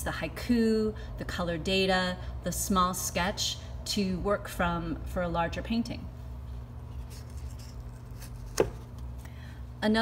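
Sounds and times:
paper rustling: 0:07.0 - 0:09.0.

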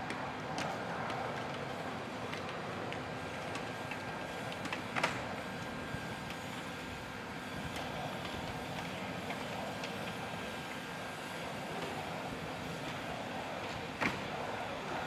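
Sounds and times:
machinery whirring: 0:00.0 - 0:15.0.

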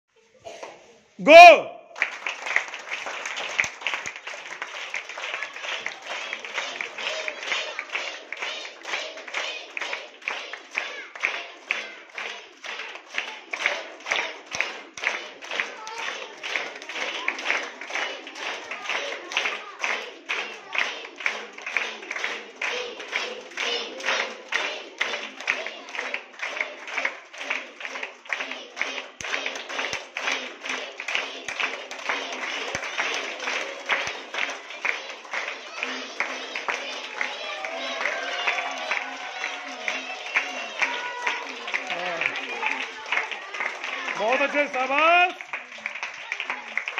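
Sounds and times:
children clapping in rhythm: 0:00.6 - 0:46.9
children's voices: 0:05.0 - 0:21.3, 0:31.1 - 0:44.3, 0:45.9 - 0:46.9.

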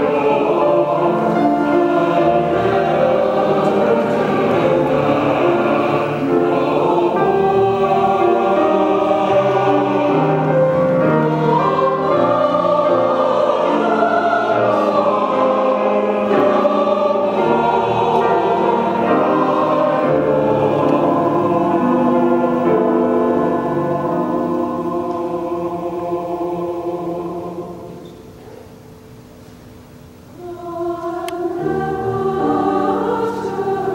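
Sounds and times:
church choir singing: 0:00.0 - 0:33.9
grand piano: 0:00.0 - 0:33.9.

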